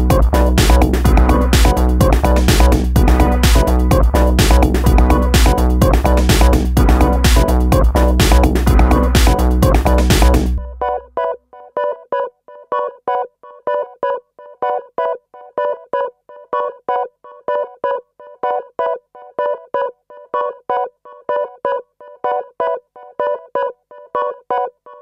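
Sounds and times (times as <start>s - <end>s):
staccato electronic keyboard notes: 0.0s - 12.1s.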